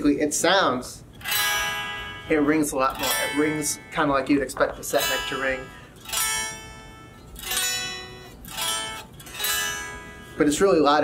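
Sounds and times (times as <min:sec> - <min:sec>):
unplugged electric guitar strummed chords: 0:01.2 - 0:10.5.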